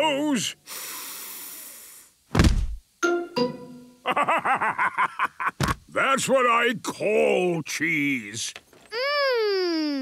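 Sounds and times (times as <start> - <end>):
cartoon heavy thud: 2.3 - 2.8
descending comic musical notes: 3.0 - 4.2.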